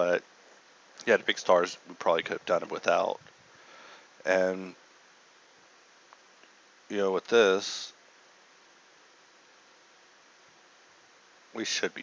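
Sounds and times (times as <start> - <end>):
faint microphone hiss: 0.0 - 12.0.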